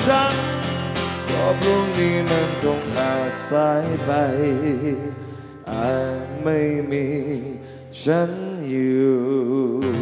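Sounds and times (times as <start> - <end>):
acoustic guitar: 0.0 - 10.0
man singing with vibrato: 0.0 - 10.0.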